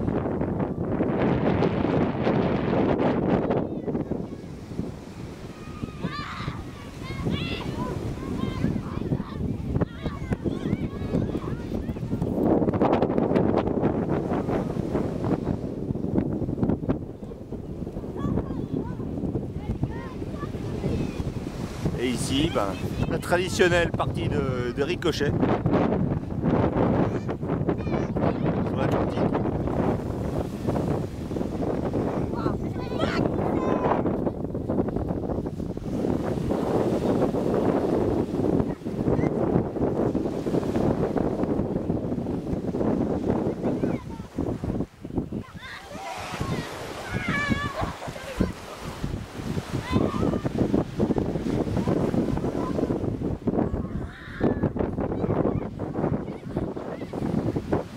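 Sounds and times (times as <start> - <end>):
small waves breaking on sand: 0.0 - 57.9
wind buffeting microphone: 0.0 - 57.9.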